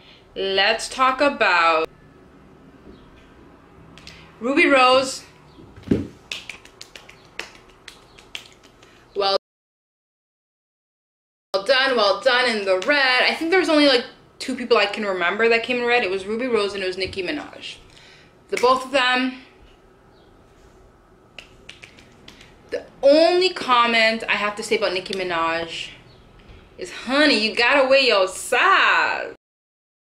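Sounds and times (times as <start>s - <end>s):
fingers snapping: 6.3s - 9.0s, 21.4s - 22.6s.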